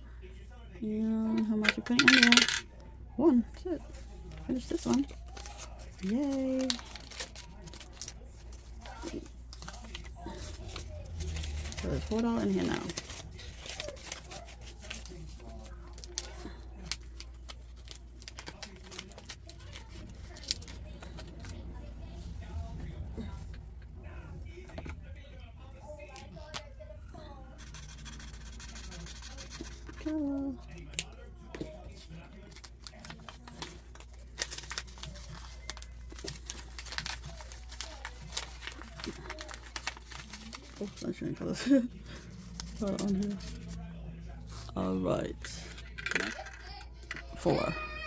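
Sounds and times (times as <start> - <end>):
low steady hum: 0.0 - 48.0
cards and sleeves rustling: 1.3 - 2.6, 3.6 - 22.5, 27.5 - 47.7
marker scratching on card: 27.6 - 30.0.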